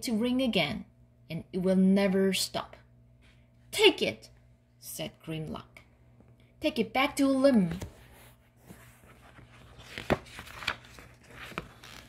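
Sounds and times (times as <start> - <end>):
paper rustling: 7.7 - 12.0.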